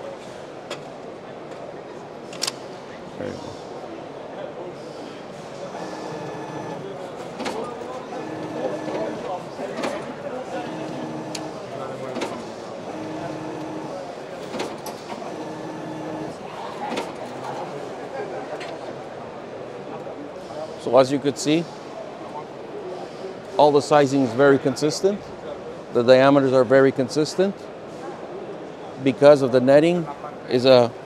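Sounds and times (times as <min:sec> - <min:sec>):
stuffing machine hum: 0:05.7 - 0:17.4
clipper sharp clicks: 0:10.7 - 0:11.6.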